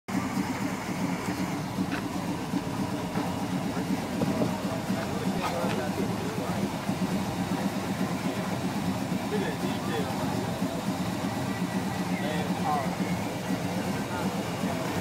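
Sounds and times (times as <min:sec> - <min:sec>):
car engine idling: 0:00.1 - 0:15.0.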